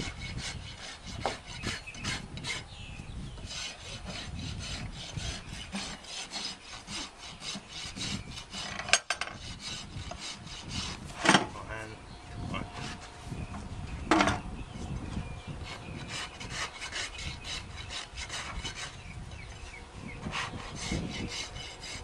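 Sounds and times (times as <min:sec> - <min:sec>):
rasp filing hoof: 0:00.0 - 0:02.7, 0:03.3 - 0:11.5, 0:12.8 - 0:13.1, 0:15.6 - 0:22.0.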